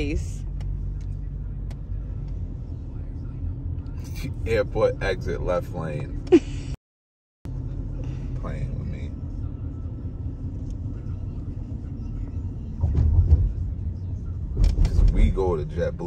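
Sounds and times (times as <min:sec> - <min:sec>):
car cabin road rumble: 0:00.0 - 0:06.8, 0:07.5 - 0:16.0.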